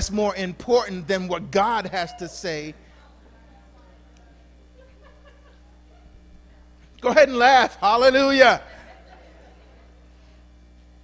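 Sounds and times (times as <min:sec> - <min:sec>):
electrical hum: 0:00.0 - 0:11.0
faint scattered voices: 0:02.6 - 0:07.0
people laughing softly: 0:04.4 - 0:06.9, 0:08.6 - 0:10.6.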